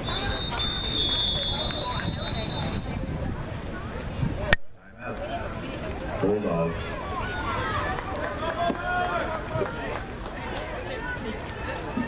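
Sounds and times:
people shouting and chattering: 0.0 - 12.0.

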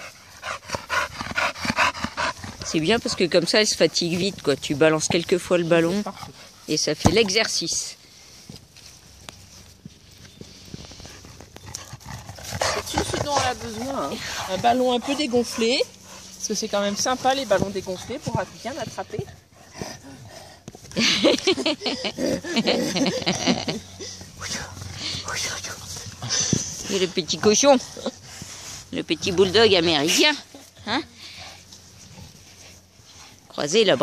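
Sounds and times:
dog breathing hard and snuffling: 0.0 - 7.3, 10.1 - 33.9
footsteps on grass: 2.4 - 20.0.

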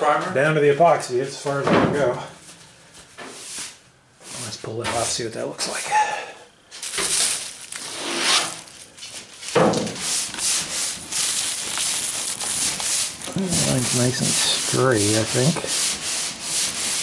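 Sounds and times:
sandpaper rubbing on car panel: 10.0 - 11.5, 12.8 - 17.0.

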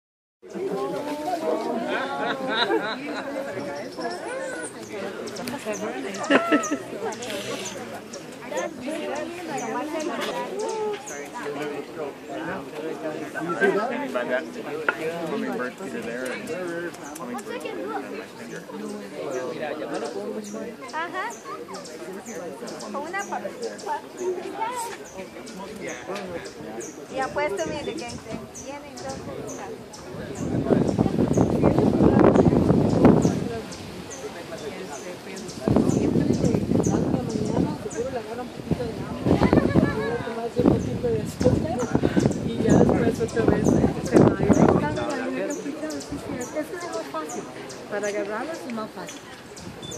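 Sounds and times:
people talking: 0.4 - 49.9.

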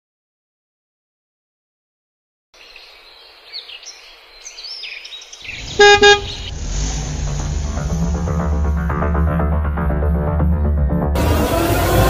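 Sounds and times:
high chirps: 5.0 - 6.6
horn honks: 5.6 - 6.5
bass-heavy music: 5.6 - 12.0.

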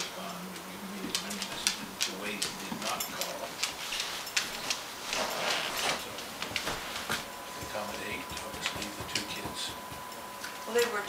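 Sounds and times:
dog claws clicking on wood floor: 0.0 - 10.6
steady low hum: 0.0 - 11.0.

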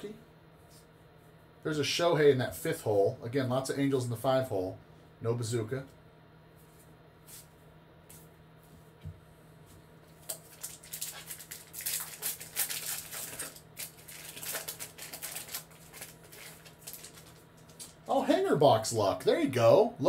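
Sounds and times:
wrapper crinkling and crackling: 10.2 - 18.1.

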